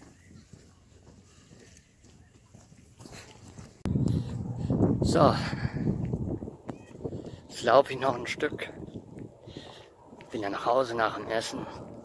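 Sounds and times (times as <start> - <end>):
faint footsteps: 0.0 - 12.0
wind buffeting microphone: 2.5 - 12.0.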